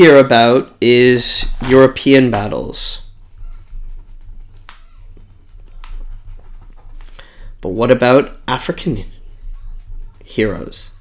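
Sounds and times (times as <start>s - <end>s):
pen scratching on paper: 3.1s - 7.1s.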